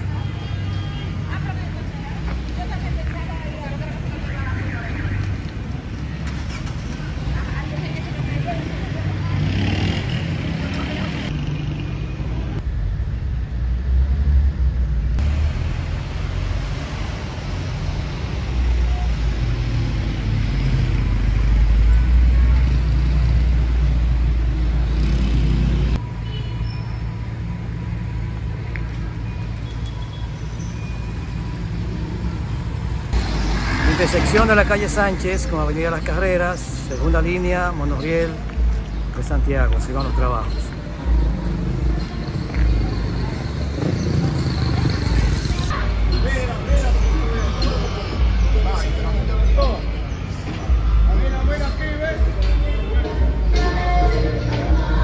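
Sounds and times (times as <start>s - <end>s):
street traffic rumble: 0.0s - 55.0s.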